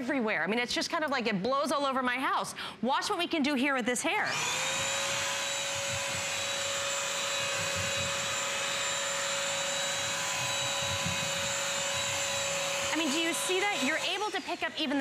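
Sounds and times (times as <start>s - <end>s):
vacuum cleaner motor whine: 4.3s - 15.0s.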